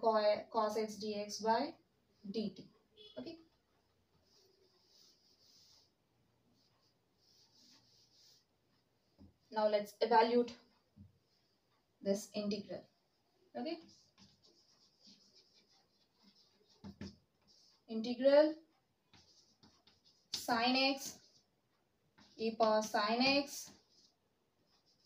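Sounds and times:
cloth wiping blackboard: 0:04.2 - 0:06.0, 0:06.6 - 0:08.5, 0:13.8 - 0:17.8, 0:19.1 - 0:21.4.

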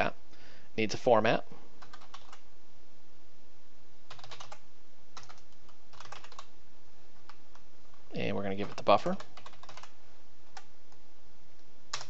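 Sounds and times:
typing on keyboard: 0:01.8 - 0:02.4, 0:04.1 - 0:04.6, 0:05.2 - 0:06.5, 0:08.6 - 0:09.9.

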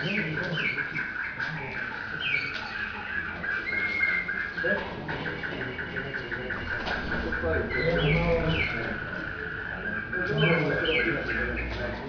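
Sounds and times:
canary singing through tv speaker: 0:00.0 - 0:12.0.

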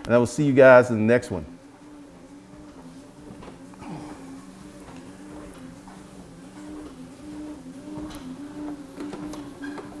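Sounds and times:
treadmill motor humming: 0:00.0 - 0:10.0.

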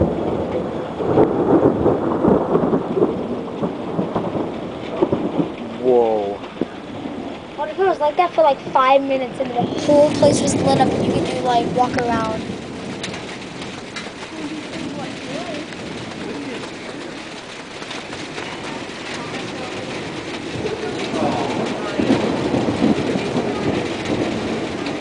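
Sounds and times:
steady rushing rain: 0:00.0 - 0:25.0
thunder rumbling: 0:00.0 - 0:25.0.

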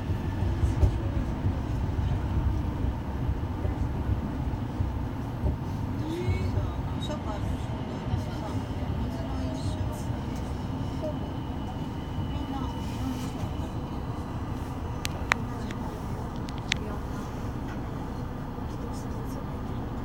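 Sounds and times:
train car humming: 0:00.0 - 0:20.0.

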